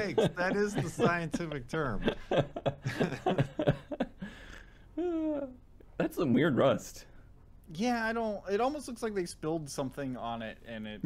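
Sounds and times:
people laughing: 0.0 - 4.4.

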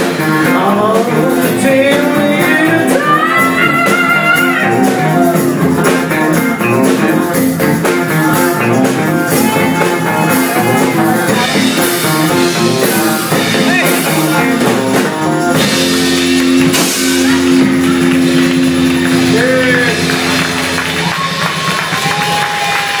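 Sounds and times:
rock band playing funk: 0.0 - 23.0.

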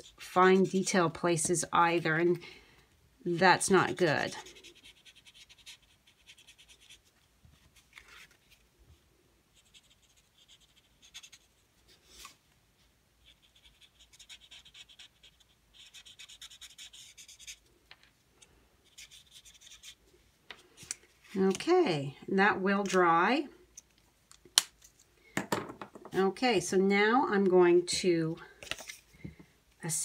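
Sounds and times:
marker tip scratching on card: 4.5 - 7.1, 9.6 - 11.5, 13.2 - 17.6, 18.9 - 20.0.

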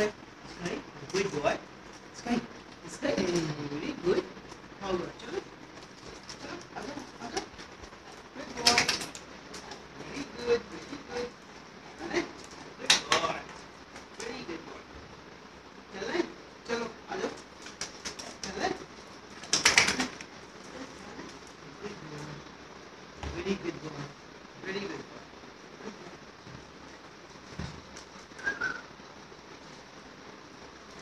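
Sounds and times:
rapid flapping and rustling: 0.0 - 31.0.

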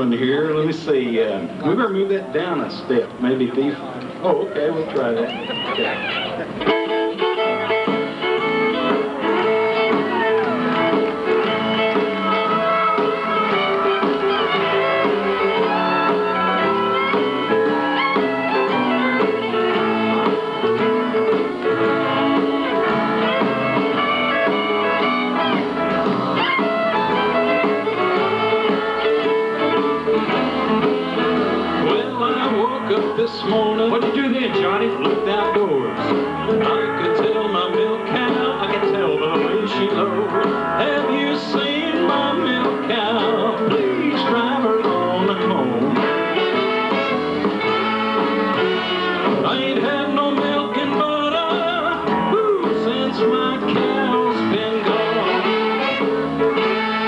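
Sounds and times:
western swing band playing: 0.0 - 57.0.

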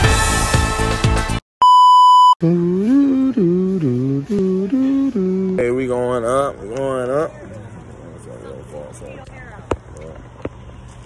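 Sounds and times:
electronic beep: 1.6 - 2.4
man singing: 2.4 - 6.7.

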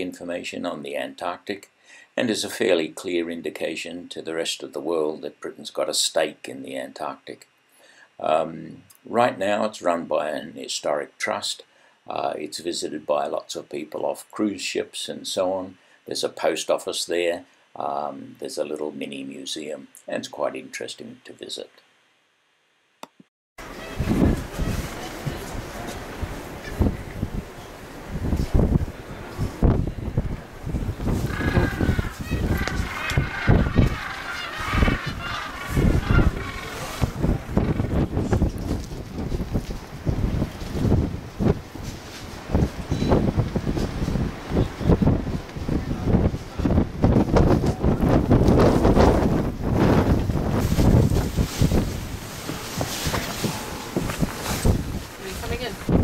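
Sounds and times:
gusty wind buffeting microphone: 23.6 - 56.0.

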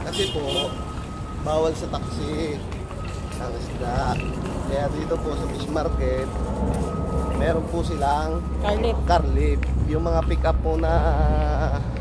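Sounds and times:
high-pitched tone: 0.6 - 9.5.

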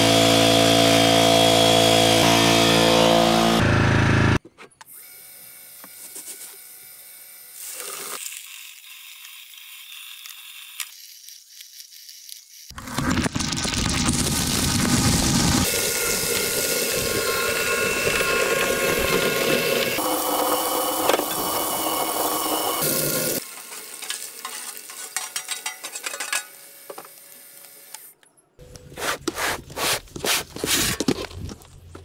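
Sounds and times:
shredder motor whine: 0.0 - 7.6, 14.0 - 23.5
grinding and crackling of metal: 15.6 - 27.2
clattering of shredded aluminium: 23.7 - 26.6.

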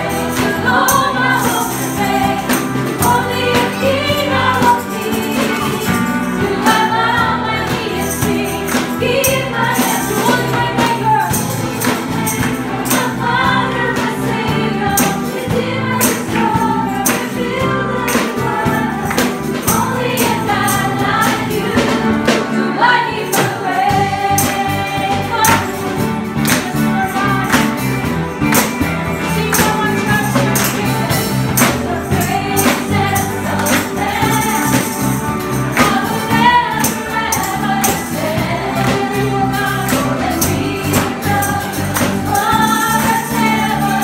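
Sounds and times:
tambourine jingles: 0.0 - 22.5, 23.1 - 44.0
women singing together: 0.0 - 28.1, 29.1 - 44.0
guitars: 0.0 - 44.0.

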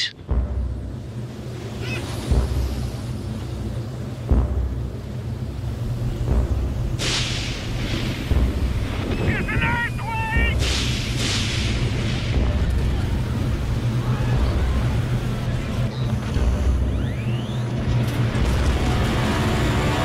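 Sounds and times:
deep steady rumble: 0.0 - 9.6, 10.4 - 20.0
loud whooshing blasts: 10.6 - 15.4.

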